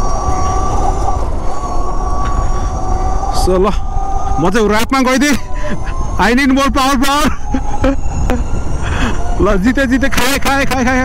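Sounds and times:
electric scooter motor whining: 0:00.0 - 0:11.0
road rumble: 0:00.0 - 0:11.0
wind noise on microphone: 0:00.0 - 0:11.0.

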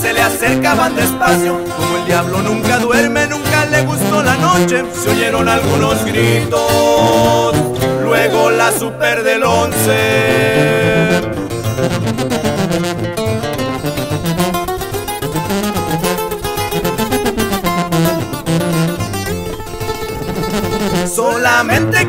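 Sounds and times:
acoustic guitars picking fast melody: 0:00.0 - 0:22.0
pulsing bass line: 0:00.0 - 0:22.0.

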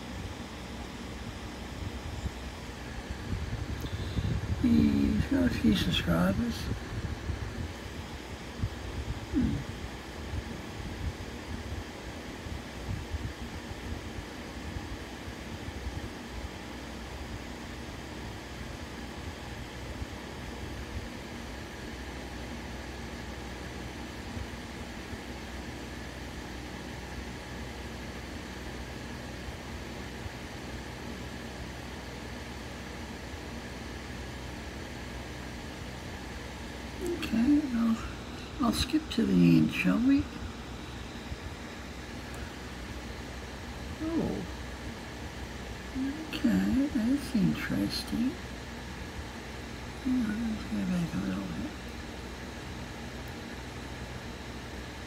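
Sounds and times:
background hum and hiss: 0:00.0 - 0:55.0.

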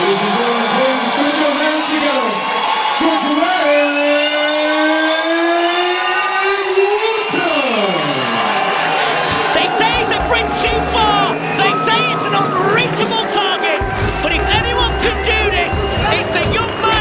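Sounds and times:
entrance music with heavy beat: 0:09.3 - 0:17.0
announcer calling into a microphone: 0:09.5 - 0:17.0.

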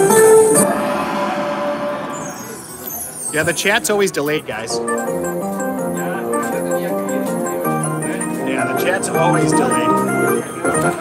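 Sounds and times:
slot machine win music: 0:04.4 - 0:11.0.

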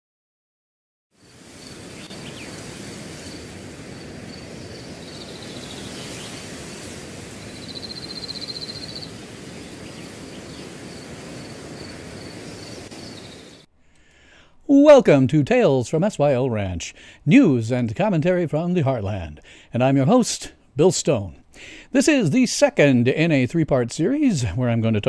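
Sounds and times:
faint chirps: 0:01.2 - 0:03.5, 0:04.2 - 0:13.7.

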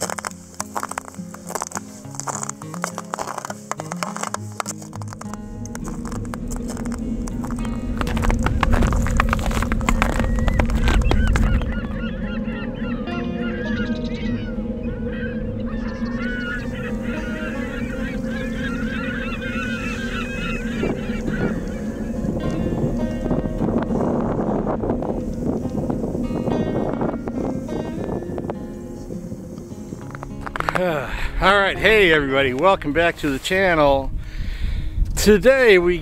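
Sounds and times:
flock of waterbirds calling: 0:00.0 - 0:30.7
sustained music tone: 0:00.0 - 0:34.2
loud low rumble with clatter: 0:05.2 - 0:29.2.

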